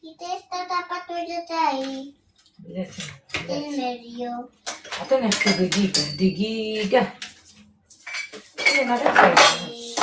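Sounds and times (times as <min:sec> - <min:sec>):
person speaking: 0:00.0 - 0:07.8.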